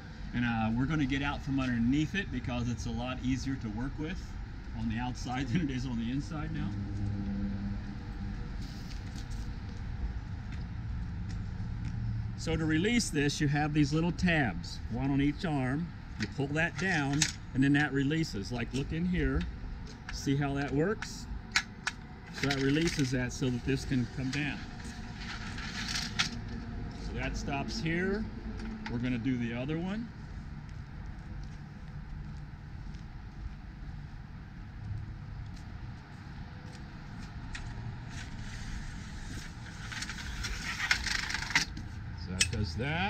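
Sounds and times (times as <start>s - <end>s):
low outdoor rumble: 0.0s - 43.0s
metal awning arm scraping: 22.3s - 27.2s, 38.1s - 41.8s
faint rustles and ticks: 30.2s - 42.0s.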